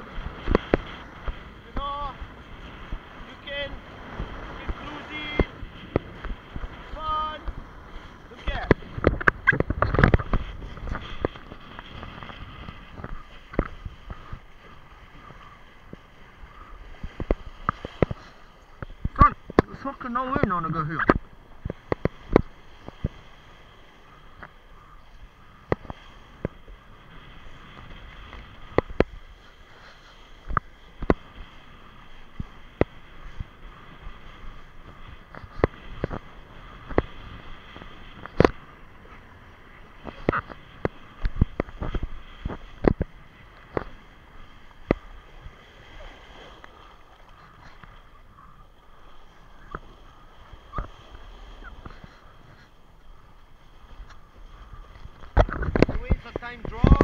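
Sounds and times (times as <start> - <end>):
board slapping on water: 0.0 - 1.9, 30.4 - 39.2, 39.9 - 48.1, 54.9 - 57.0
rush of wind and water: 0.0 - 57.0.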